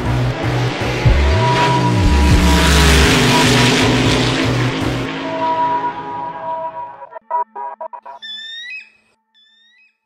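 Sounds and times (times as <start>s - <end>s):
bird of prey cries: 8.2s - 10.0s.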